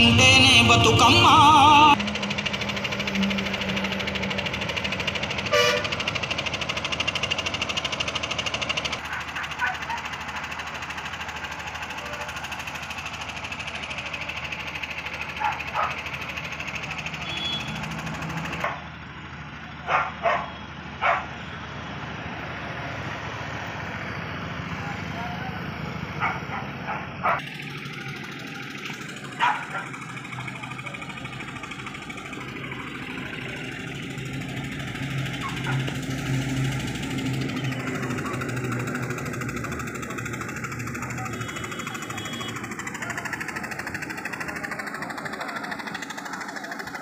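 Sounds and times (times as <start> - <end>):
loud music: 0.0 - 2.0
passing traffic: 0.0 - 47.0.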